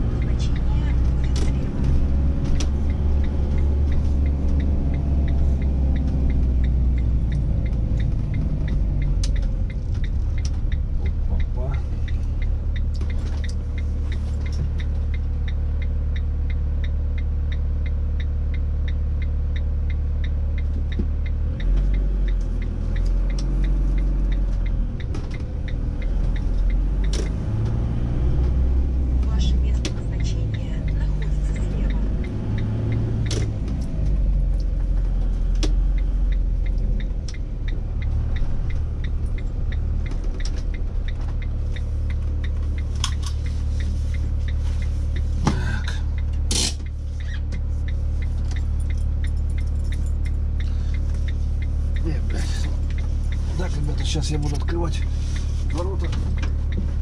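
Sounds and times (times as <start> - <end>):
faint regular ticking: 0.0 - 57.0
vehicle engine and road rumble: 0.0 - 57.0.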